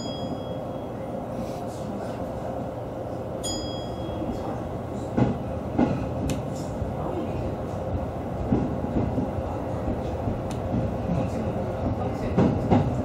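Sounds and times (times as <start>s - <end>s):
high ringing chime: 0.0s - 1.1s, 3.4s - 4.5s
electric train running hum: 0.0s - 13.0s.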